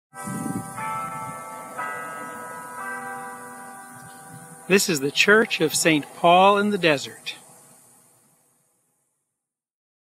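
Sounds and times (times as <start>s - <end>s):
church bells ringing: 0.1s - 8.2s.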